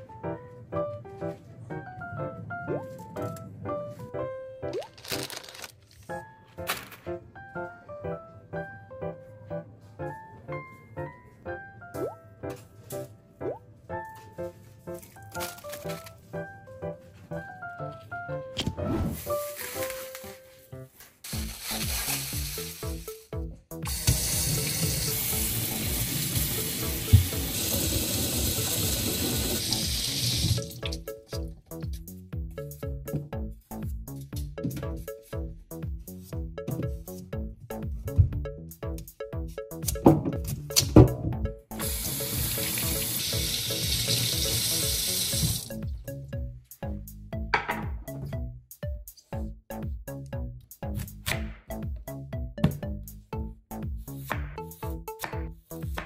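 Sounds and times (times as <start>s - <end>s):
light background music: 0.0s - 56.0s
tap water running into sink: 23.9s - 31.0s, 41.8s - 45.8s
knock: 47.6s - 48.0s.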